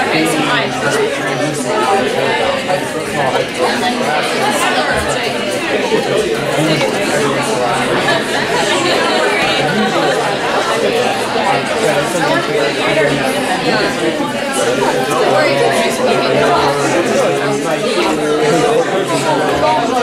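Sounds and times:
babble of overlapping voices: 0.0 - 20.0.

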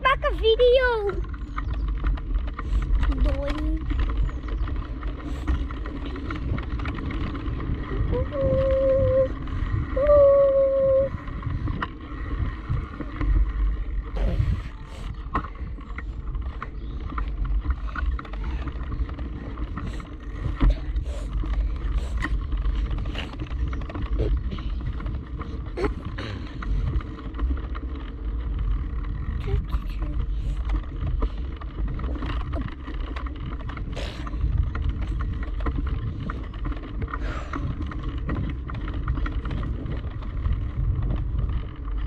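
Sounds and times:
bicycle clicks and rattles: 0.0 - 42.0
wind buffeting microphone: 0.0 - 42.0.

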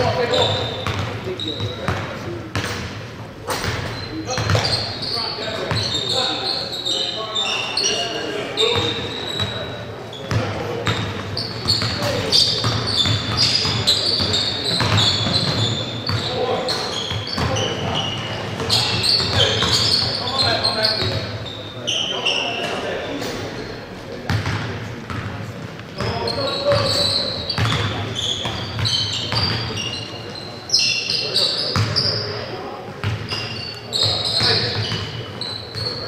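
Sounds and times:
sneaker squeaks: 0.0 - 25.3, 26.0 - 36.0.

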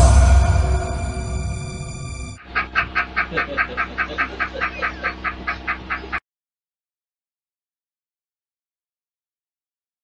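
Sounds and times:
man laughing hard: 2.4 - 6.2.

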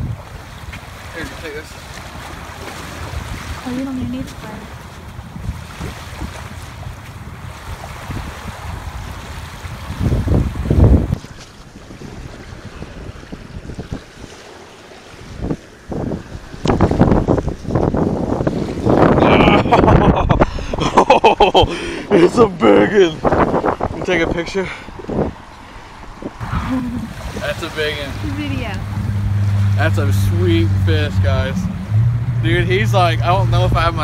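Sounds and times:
small waves washing: 0.0 - 21.1, 21.8 - 32.0
wind buffeting microphone: 0.0 - 34.0.

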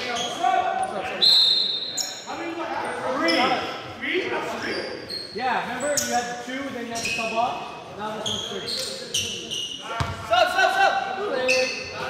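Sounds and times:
short high squeaks: 4.6 - 6.2.

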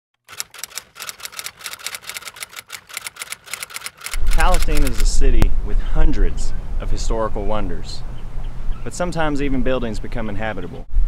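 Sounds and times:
typewriter keystrokes: 0.2 - 5.2.

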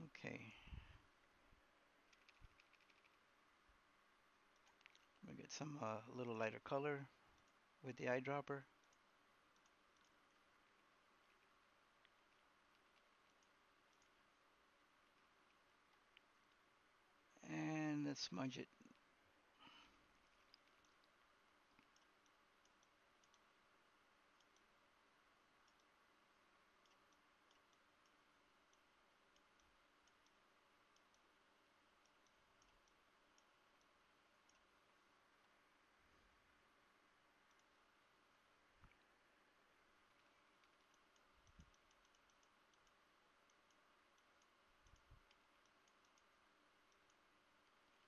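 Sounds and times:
computer mouse clicks: 2.0 - 3.3, 4.5 - 5.2, 7.3 - 7.6, 8.7 - 16.7, 19.6 - 23.6, 24.3 - 24.8, 25.6 - 26.1, 26.7 - 35.6, 37.4 - 39.1, 39.9 - 48.0.

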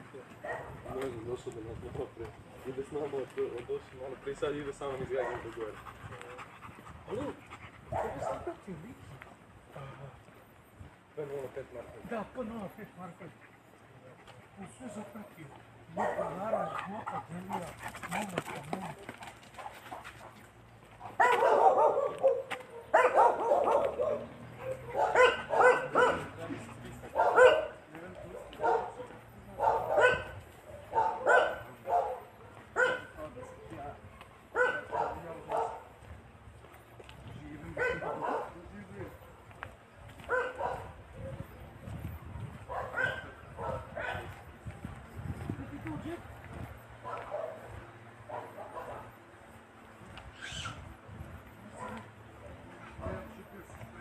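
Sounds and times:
dog barking: 0.4 - 0.8, 5.2 - 5.5, 7.9 - 8.5, 15.9 - 17.2, 21.0 - 26.4, 27.1 - 33.6, 34.5 - 35.9, 37.8 - 38.6, 40.2 - 41.4, 42.7 - 44.3, 47.0 - 49.1, 51.8 - 52.1.

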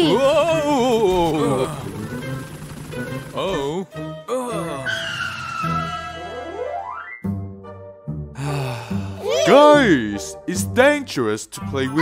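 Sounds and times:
background music: 0.0 - 12.0
cartoon tyre screech: 4.9 - 6.5.

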